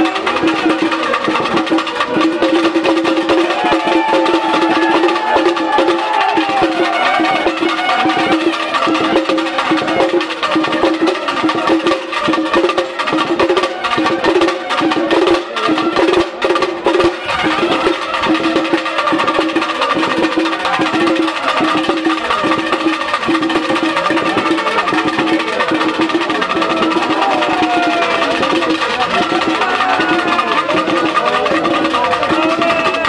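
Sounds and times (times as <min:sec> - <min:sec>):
drums with sharp clacking strokes: 0:00.0 - 0:33.0
wavering melody: 0:00.0 - 0:33.0.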